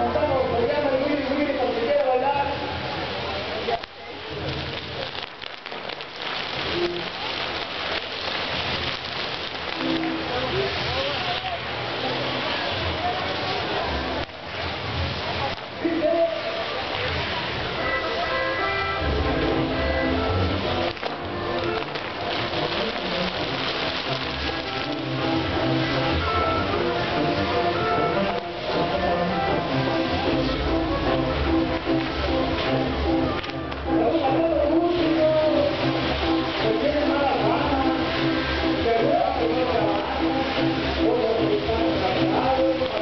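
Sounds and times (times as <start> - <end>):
band music: 0.0 - 43.0
fireworks crackling and hissing: 0.0 - 43.0
small firework pops: 3.6 - 11.7, 14.2 - 15.8, 20.6 - 26.0, 28.2 - 28.6, 31.6 - 33.9.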